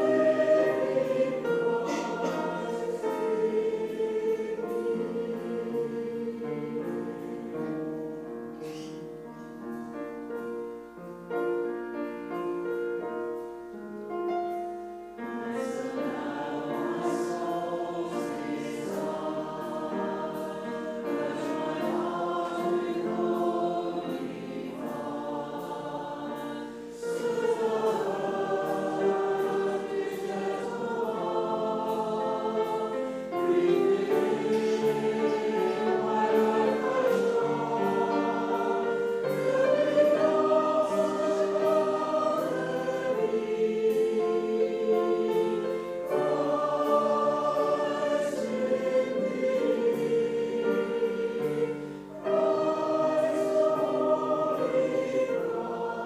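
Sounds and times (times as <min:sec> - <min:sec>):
congregation singing a hymn: 0:00.0 - 0:56.0.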